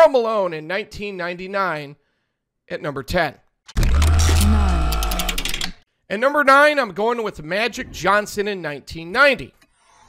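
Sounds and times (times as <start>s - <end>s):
fast mechanical clicks: 3.8s - 5.8s.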